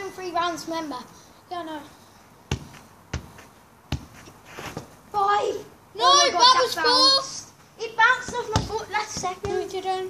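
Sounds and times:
ball striking a foot: 2.5s - 4.9s, 8.2s - 9.7s.

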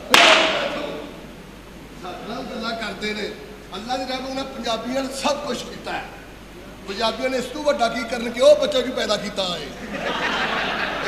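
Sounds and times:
strap striking slapstick crack: 0.0s - 0.9s.

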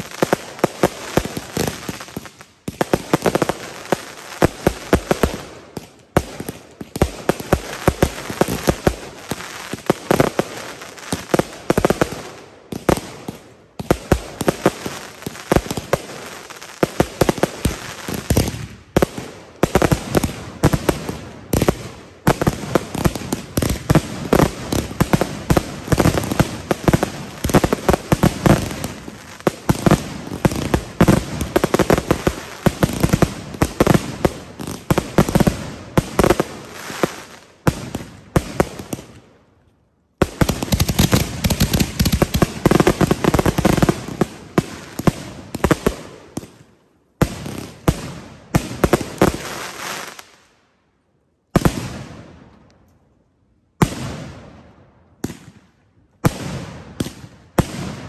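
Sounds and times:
fireworks barrage: 0.0s - 39.2s, 40.2s - 46.6s.

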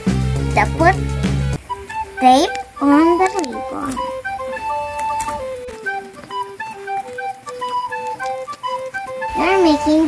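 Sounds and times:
soft flute-like melody: 1.6s - 10.0s.

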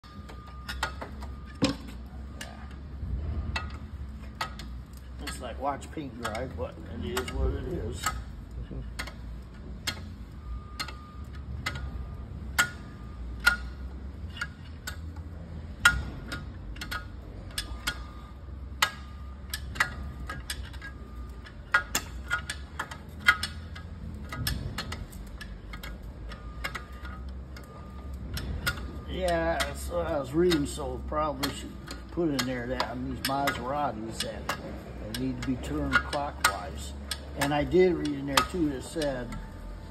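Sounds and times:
low steady hum: 0.0s - 39.9s.

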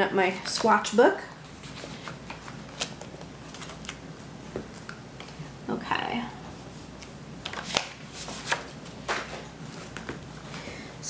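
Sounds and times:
plastic and paper crinkling: 1.4s - 4.0s, 6.9s - 10.5s.

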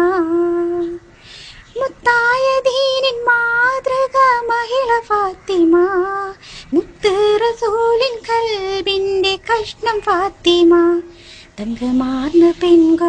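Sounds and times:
girl singing devotional song: 0.0s - 13.0s.

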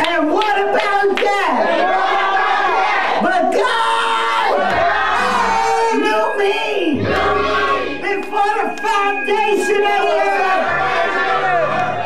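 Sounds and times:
congregation shouting: 0.3s - 12.0s.

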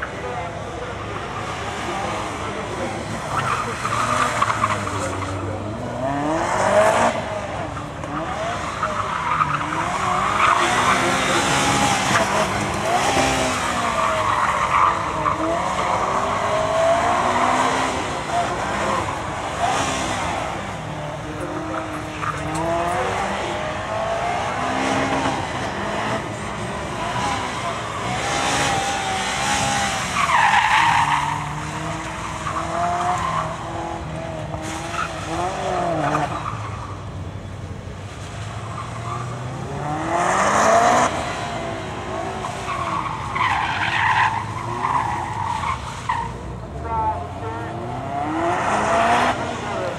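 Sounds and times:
tyres squealing on tarmac: 0.0s - 49.9s
car engine revving hard: 1.5s - 36.7s, 38.3s - 46.1s, 46.8s - 49.9s.

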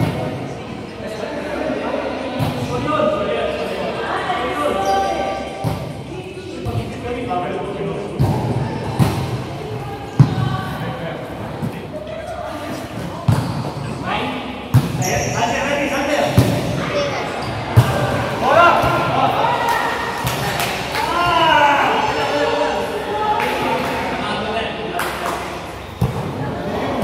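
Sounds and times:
volleyball hits: 14.7s - 15.3s, 17.6s - 21.4s.

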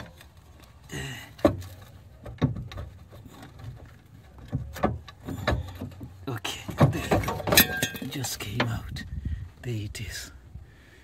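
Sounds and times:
metal knocks and clunks: 1.4s - 8.8s.

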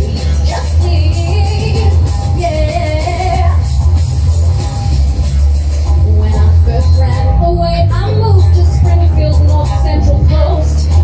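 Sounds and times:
woman singing into microphone: 0.0s - 3.7s, 6.0s - 11.0s
amplified backing music with bass: 0.0s - 11.0s.

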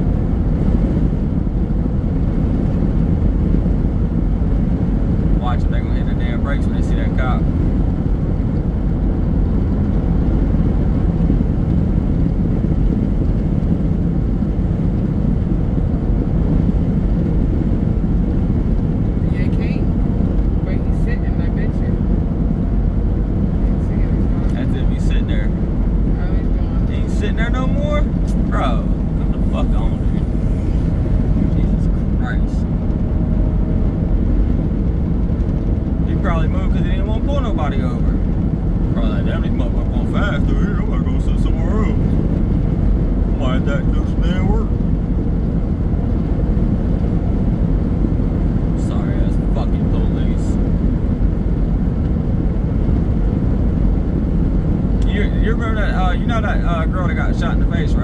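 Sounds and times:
car road and engine rumble: 0.0s - 58.0s.

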